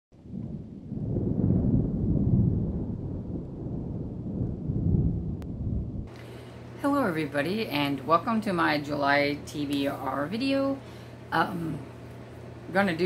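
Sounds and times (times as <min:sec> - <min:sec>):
thunder rumbling: 0:00.1 - 0:06.2.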